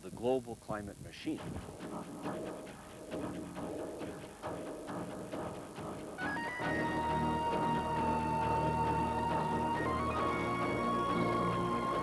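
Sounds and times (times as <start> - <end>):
background music repeating notes: 1.4 - 12.0.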